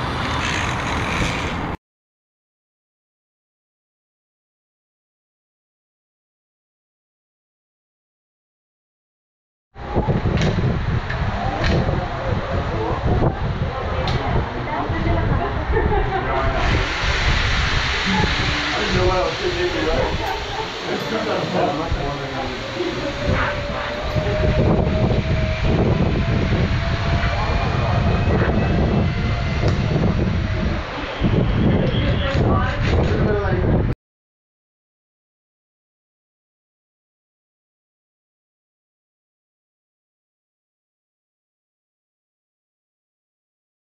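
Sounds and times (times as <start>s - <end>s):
zipline trolley rolling on cable: 0.0s - 1.8s, 9.8s - 33.6s
loud low rumbling: 9.8s - 34.0s
indistinct echoing voices: 11.3s - 32.4s.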